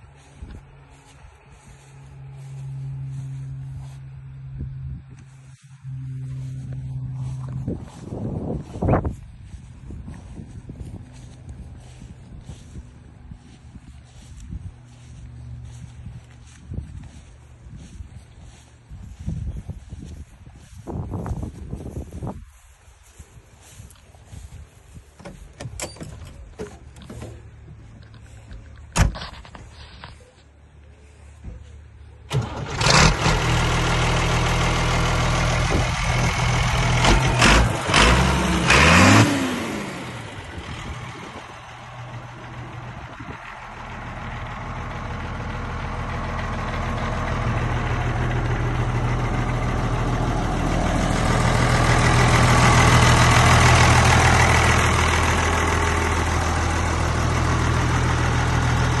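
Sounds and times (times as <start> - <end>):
tractor diesel engine starting and idling: 0.0 - 59.0.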